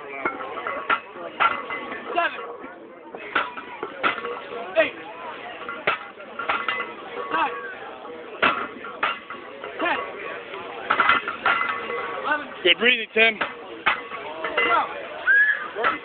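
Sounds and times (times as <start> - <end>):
crowd voices: 0.0 - 16.0
metal barbells clinking: 0.0 - 16.0
people shouting: 14.6 - 16.0.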